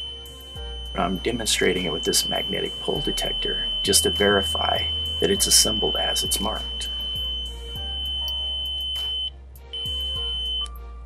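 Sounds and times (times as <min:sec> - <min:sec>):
high-pitched detector beep: 0:00.0 - 0:10.7
soft background music: 0:00.0 - 0:11.0.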